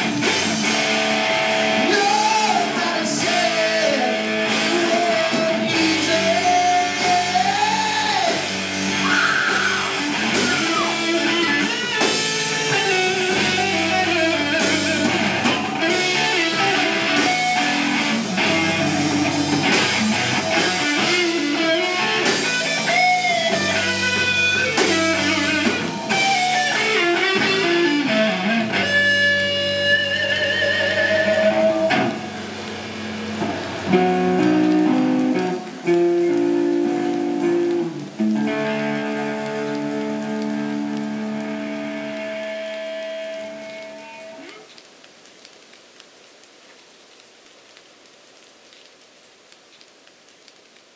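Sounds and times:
hard rock band playing: 0.0s - 44.4s.

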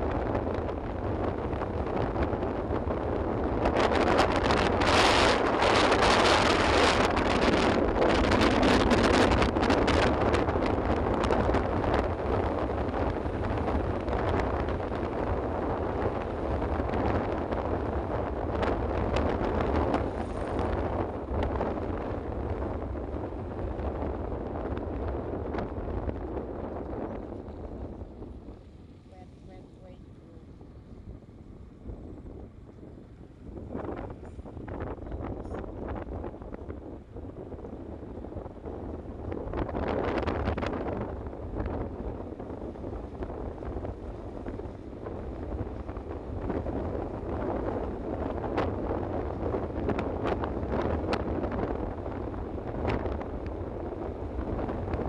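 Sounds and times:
moving vehicle rumble: 0.0s - 55.0s
wind buffeting microphone: 0.0s - 55.0s.

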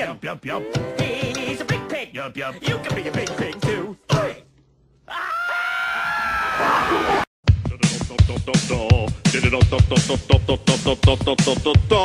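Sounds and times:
high-pitched scream: 5.1s - 7.2s.

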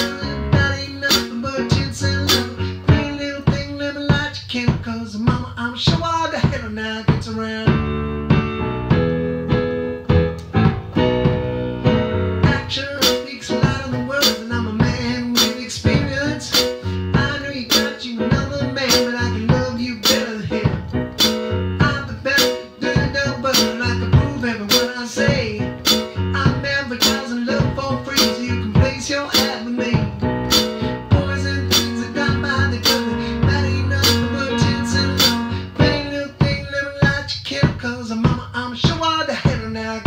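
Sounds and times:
drum beat: 0.0s - 40.0s
stage piano playing: 0.0s - 40.0s.

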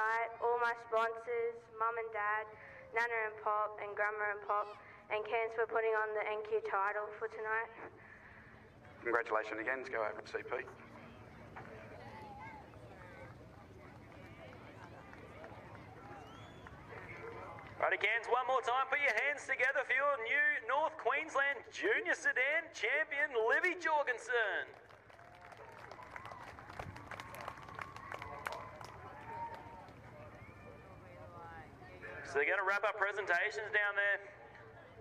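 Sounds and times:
people chattering: 8.4s - 18.1s, 27.0s - 33.3s, 34.2s - 35.0s
people talking faintly: 10.4s - 17.8s.

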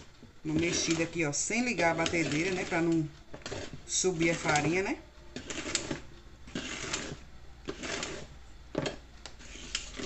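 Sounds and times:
mixer beaters scraping a bowl: 0.0s - 10.0s.

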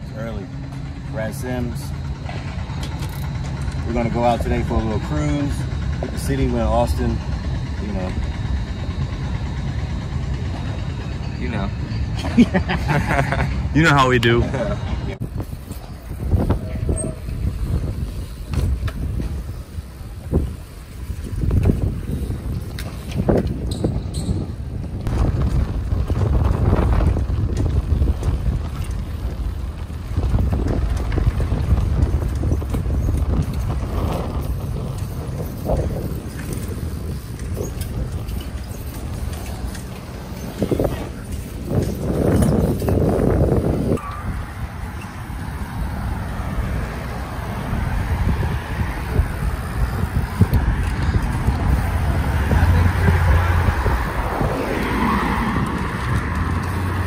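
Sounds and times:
bikes rolling over concrete: 0.0s - 57.0s
wind rumbling on microphone: 0.0s - 57.0s
bike knocks and rattles: 15.3s - 45.4s.

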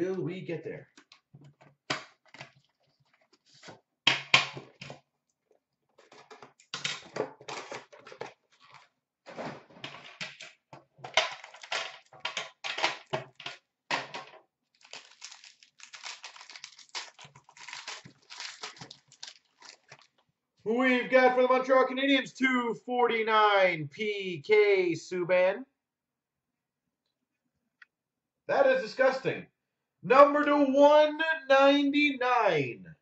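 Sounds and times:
cardboard and wrapping tearing: 14.8s - 20.1s
cards rustling: 14.8s - 20.2s.

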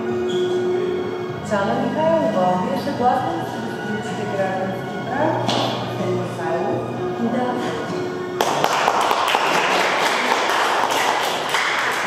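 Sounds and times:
music: 0.0s - 12.0s
crowd applauding: 8.4s - 12.0s.

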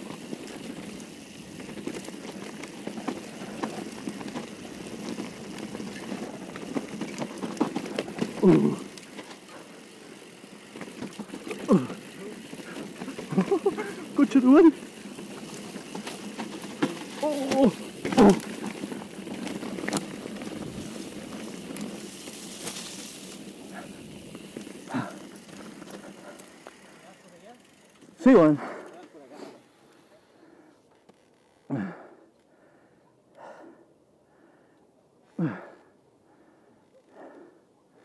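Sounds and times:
bike rattling over bumps: 0.0s - 29.7s
bike tyres rolling over dirt: 0.0s - 30.1s
rider exclaiming: 8.3s - 9.7s, 11.4s - 15.0s, 17.1s - 18.6s
rider shouting: 17.1s - 18.4s.

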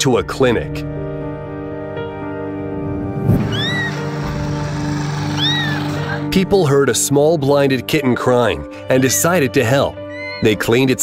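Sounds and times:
background music: 0.0s - 11.0s
kitten meowing: 3.5s - 4.1s, 5.4s - 5.9s.

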